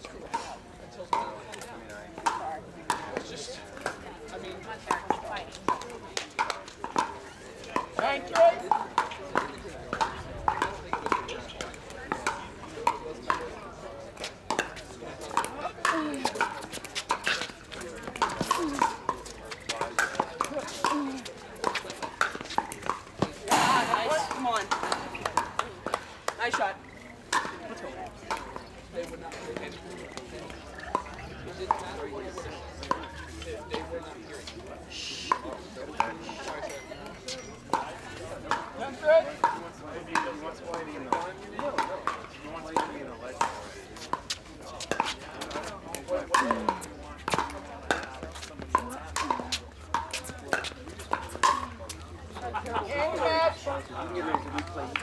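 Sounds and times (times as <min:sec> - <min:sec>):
spectators chattering: 0:00.0 - 0:55.0
paddles hitting plastic ball: 0:21.6 - 0:26.6
crowd noise burst: 0:23.5 - 0:25.3.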